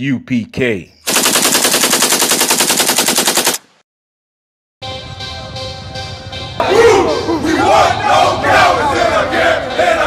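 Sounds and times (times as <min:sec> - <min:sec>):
rapid automatic gunfire: 0:01.1 - 0:03.7
music: 0:04.8 - 0:10.0.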